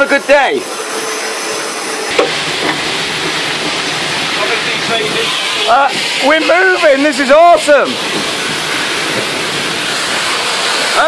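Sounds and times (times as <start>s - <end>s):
steam hissing: 0.0s - 11.0s.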